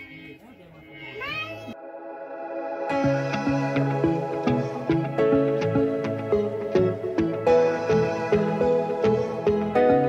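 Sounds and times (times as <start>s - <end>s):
background music: 0.0s - 10.0s
high voice gliding upward: 1.0s - 5.8s.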